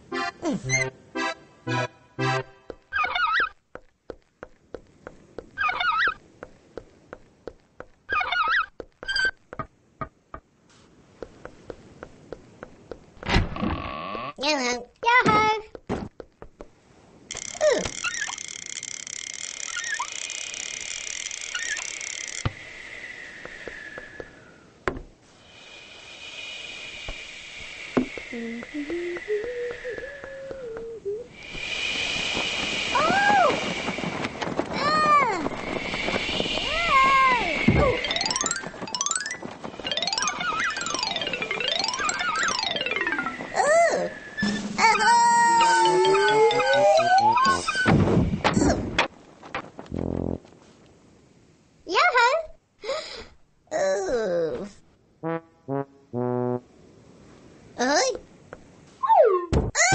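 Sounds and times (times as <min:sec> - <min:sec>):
short squeaks: 0:17.3 - 0:22.4
mechanical whirring and ratcheting: 0:17.3 - 0:22.5
falling whistle glide: 0:21.5 - 0:24.7, 0:32.6 - 0:34.1, 0:35.1 - 0:47.9
sliding pitched tones: 0:35.5 - 0:47.9, 0:55.2 - 0:56.7
cartoon music: 0:38.0 - 0:43.8, 0:44.9 - 0:47.7.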